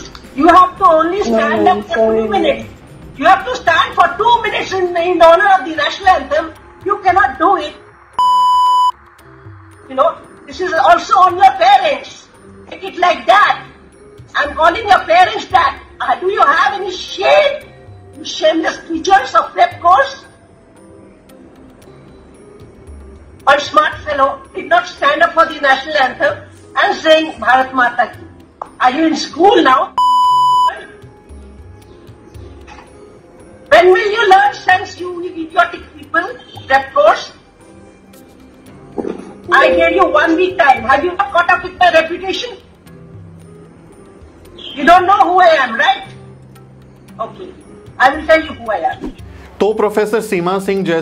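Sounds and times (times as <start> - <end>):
censor bleep: 8.2 - 9.0, 30.0 - 30.8, 39.5 - 40.9.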